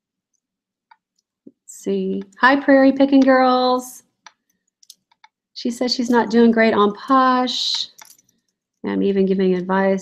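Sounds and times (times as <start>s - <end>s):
woman's voice: 1.7s - 4.1s, 5.6s - 8.0s, 8.8s - 10.0s.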